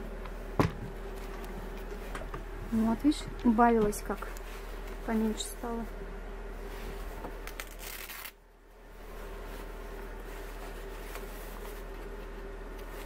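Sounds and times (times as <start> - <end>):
jacket fabric rustling: 4.0 - 13.0.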